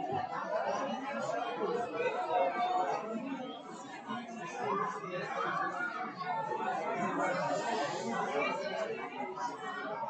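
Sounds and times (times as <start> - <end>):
many people talking: 0.0 - 10.0.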